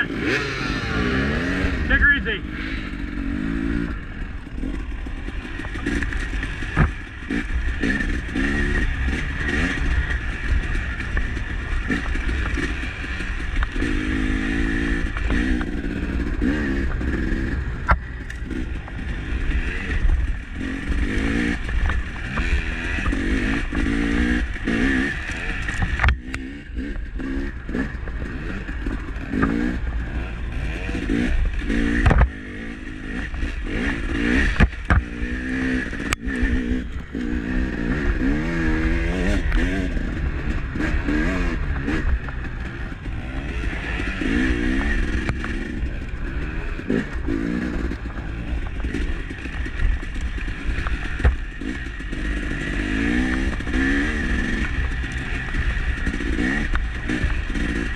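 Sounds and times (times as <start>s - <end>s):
dirt bike engine revving: 0.0s - 57.9s
sharp knocks and clatter: 4.5s - 14.0s, 31.1s - 32.4s, 33.4s - 35.2s, 47.0s - 57.9s.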